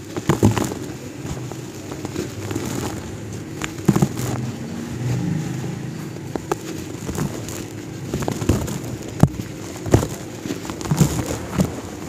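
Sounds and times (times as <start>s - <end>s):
cement crumbled by hand: 0.0s - 4.8s, 6.1s - 12.0s
crumbs pouring into plastic tub: 0.0s - 12.0s
low droning rumble: 1.0s - 10.3s.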